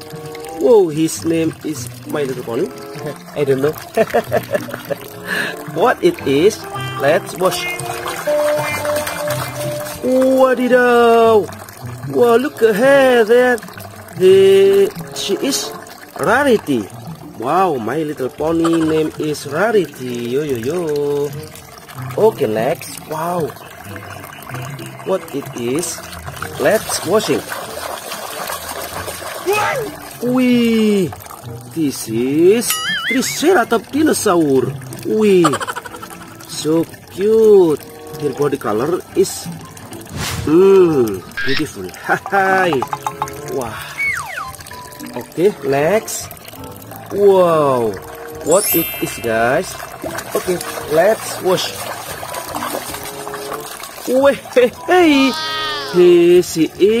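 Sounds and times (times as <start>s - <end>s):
water sloshing and splashing: 0.0s - 31.8s, 32.7s - 56.0s
water sloshing in plastic basin: 1.4s - 10.6s, 49.8s - 54.8s
person exclaiming: 29.4s - 30.0s, 32.8s - 33.4s, 55.0s - 56.2s.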